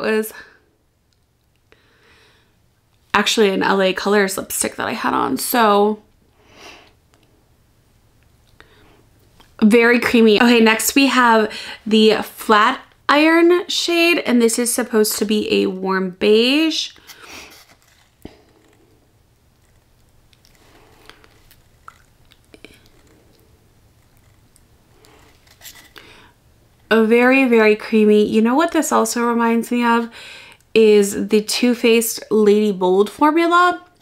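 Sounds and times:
low room hum: 0:00.0 - 0:34.0
soft lip smacks: 0:19.6 - 0:26.0.

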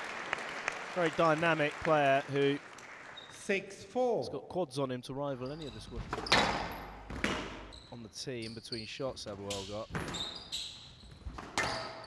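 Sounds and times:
shoes squeaking on court floor: 0:03.2 - 0:03.5, 0:05.4 - 0:12.0
squash ball being struck: 0:06.2 - 0:07.7.

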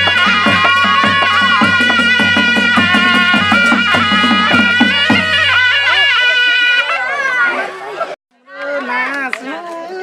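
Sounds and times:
traditional band music: 0:00.0 - 0:08.9.

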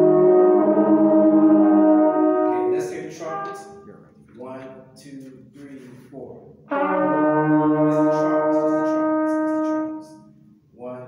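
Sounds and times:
brass chord sustained: 0:00.0 - 0:04.0, 0:06.7 - 0:10.3.

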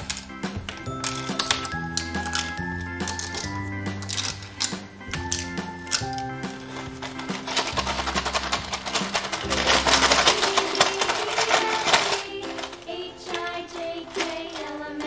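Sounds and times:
children's background music: 0:00.0 - 0:15.0
pouch of small objects rattling: 0:00.0 - 0:15.0.

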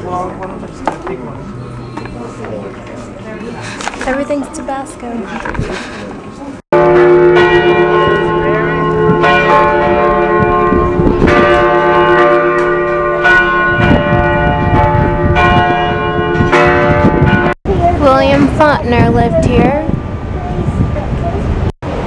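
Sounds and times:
church bells ringing: 0:06.7 - 0:17.6.

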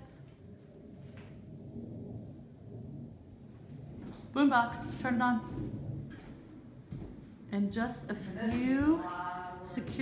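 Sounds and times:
jet aircraft rumble overhead: 0:00.0 - 0:09.9.

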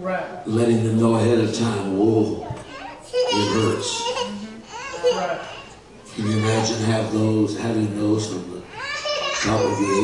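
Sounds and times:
man preaching loudly: 0:06.1 - 0:08.3, 0:09.4 - 0:10.0.

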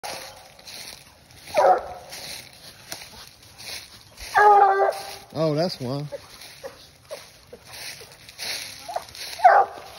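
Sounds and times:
rustling in dry leaves: 0:00.0 - 0:09.9
dog barking: 0:01.5 - 0:02.3, 0:04.3 - 0:05.2, 0:08.8 - 0:09.9.

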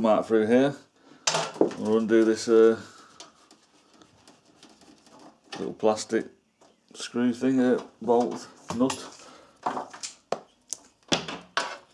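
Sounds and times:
light ticks and rustles: 0:01.7 - 0:06.8.

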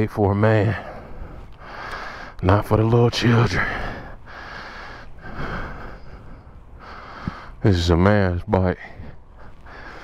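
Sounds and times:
person breathing close: 0:00.7 - 0:02.4, 0:03.5 - 0:07.6, 0:08.8 - 0:10.0.

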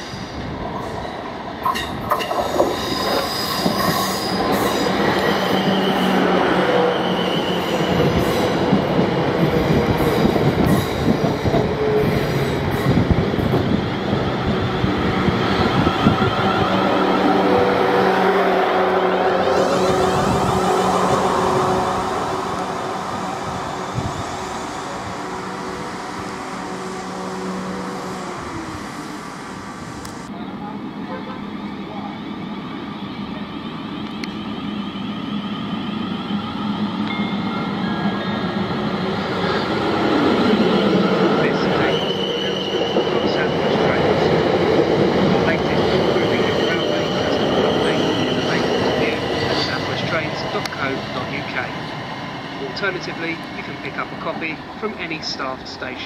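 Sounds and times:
rumble of wheels on rail: 0:00.0 - 0:56.0.

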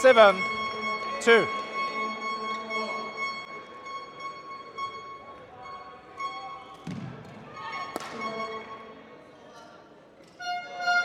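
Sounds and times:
racket striking shuttlecock: 0:06.8 - 0:08.4.

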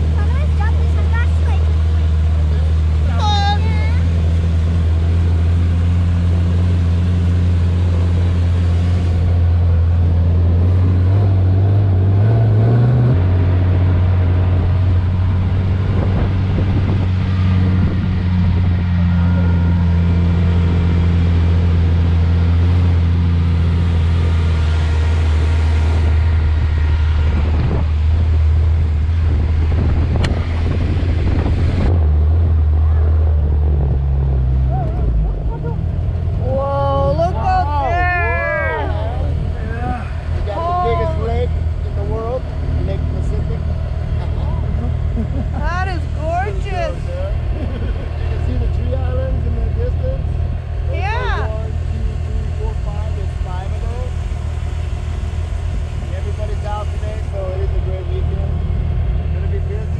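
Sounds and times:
dune buggy engine running: 0:00.0 - 0:59.9.

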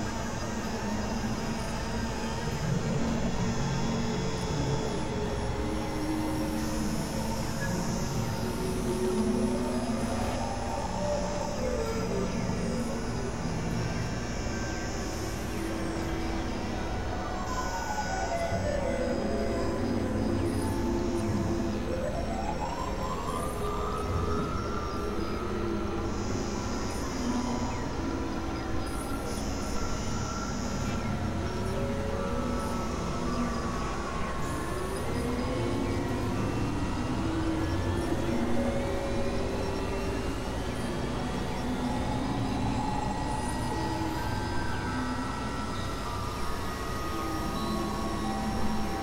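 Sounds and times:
noise music with low drones: 0:00.0 - 0:49.0.

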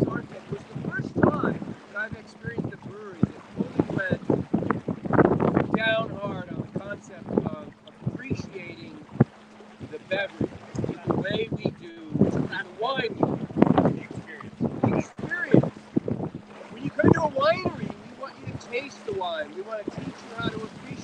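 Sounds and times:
men talking: 0:00.0 - 0:04.3, 0:05.7 - 0:09.1, 0:09.8 - 0:15.8, 0:16.6 - 0:21.0
wind on microphone: 0:00.0 - 0:21.0.

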